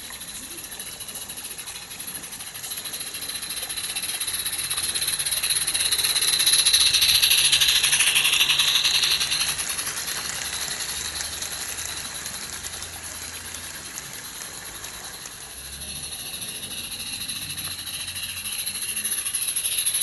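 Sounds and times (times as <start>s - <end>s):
model train wheels rattling: 0.0s - 20.0s.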